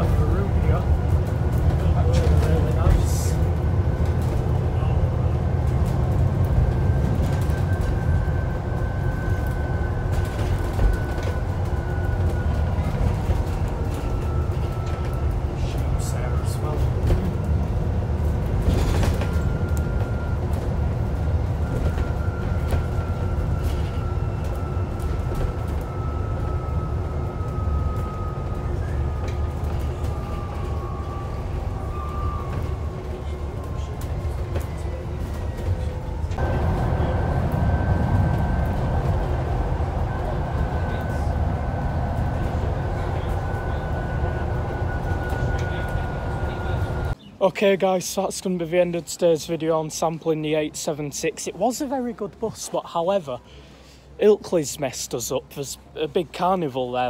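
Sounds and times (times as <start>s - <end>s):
bus engine and road rumble: 0.0s - 57.0s.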